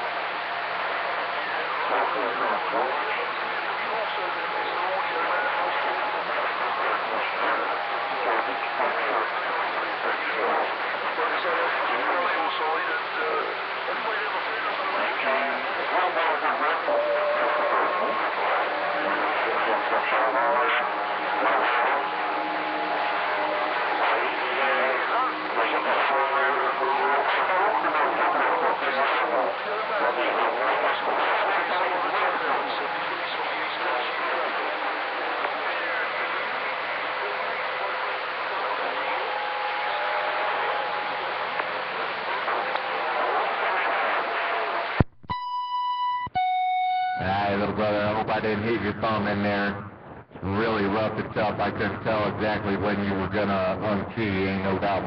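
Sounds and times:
radio static: 0.0s - 55.0s
whistling radio tones: 0.0s - 55.0s
garbled radio voice: 0.9s - 45.0s, 47.2s - 55.0s.

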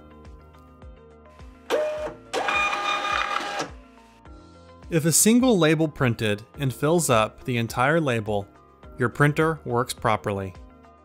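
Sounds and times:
label printer motor whirring: 1.7s - 3.7s.

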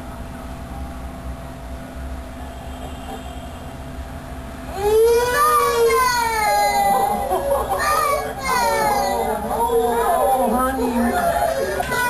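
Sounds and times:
boy crying: 4.7s - 12.0s
children's and adults' voices: 4.8s - 12.0s.

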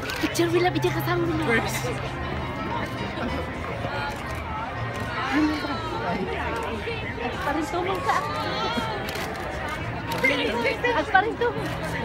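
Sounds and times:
faint music: 0.0s - 12.0s
outdoor crowd chatter: 0.0s - 12.0s.

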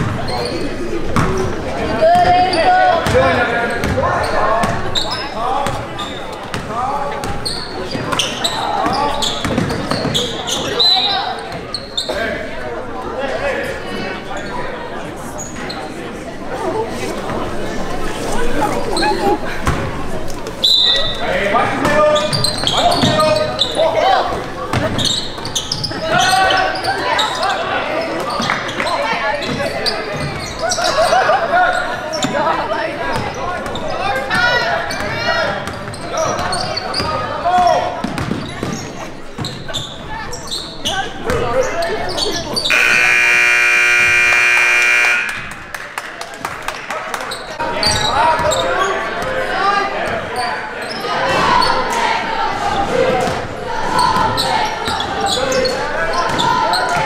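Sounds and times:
sneakers squeaking: 0.0s - 12.6s, 14.0s - 16.1s, 17.1s - 45.6s, 47.3s - 52.0s, 53.0s - 57.0s
basketball dribbling: 9.3s - 10.2s
people calling out: 42.6s - 45.8s
scoreboard horn blaring: 42.7s - 45.8s.

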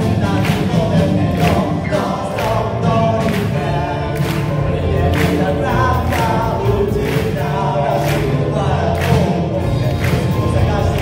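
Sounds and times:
man singing lead vocal: 0.0s - 11.0s
rock band playing live: 0.0s - 11.0s.

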